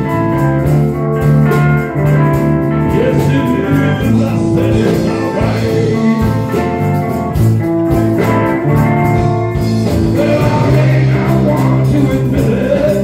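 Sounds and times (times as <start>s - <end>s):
electric guitar: 0.0s - 13.0s
live blues-rock band: 0.0s - 13.0s.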